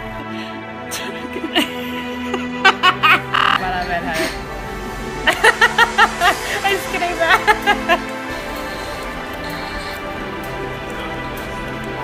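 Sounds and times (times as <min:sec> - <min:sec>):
background music held notes: 0:00.0 - 0:12.0
woman's wordless vocalizing: 0:03.2 - 0:04.4.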